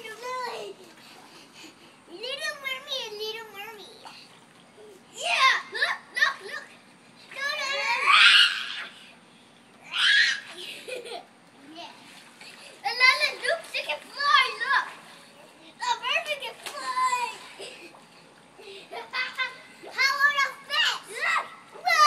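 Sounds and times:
children calling out: 7.3 - 9.0, 9.8 - 10.6, 18.9 - 22.0.

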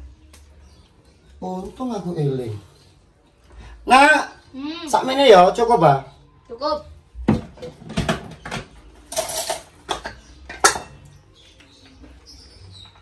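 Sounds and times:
spoons clinking on plate and bowl: 9.1 - 11.1.

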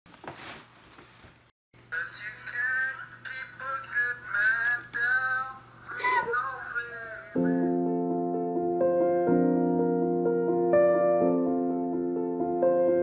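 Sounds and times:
tissue paper rustling: 0.1 - 1.5
person singing: 2.0 - 7.8.

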